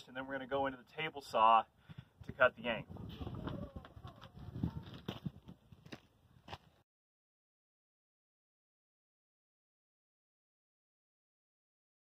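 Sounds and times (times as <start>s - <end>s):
footsteps on gravel: 2.9s - 6.8s.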